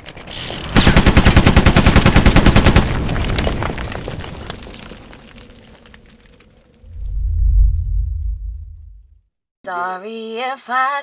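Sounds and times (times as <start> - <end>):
deep low rumble: 6.8 - 9.2.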